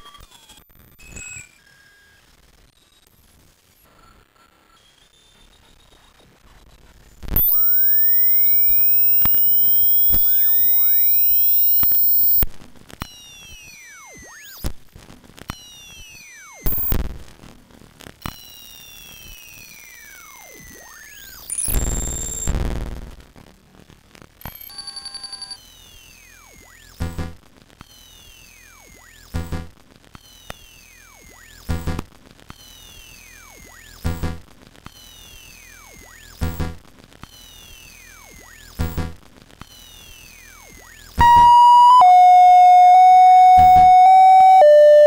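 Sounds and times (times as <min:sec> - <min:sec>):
chirping electronic tones: 0:07.4 - 0:12.4, 0:16.6 - 0:17.0, 0:41.2 - 0:45.0
loud steady high tone: 0:07.4 - 0:12.4, 0:41.2 - 0:45.0
low buzzing burst: 0:07.4 - 0:12.4
sharp clicks: 0:07.4 - 0:12.5.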